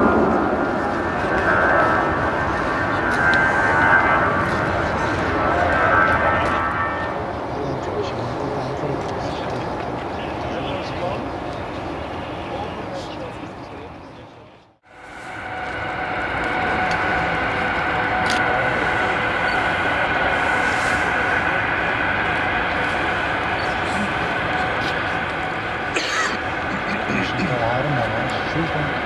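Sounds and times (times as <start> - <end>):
high engine whine: 0.0 - 29.0
jet engines rushing: 0.0 - 29.0.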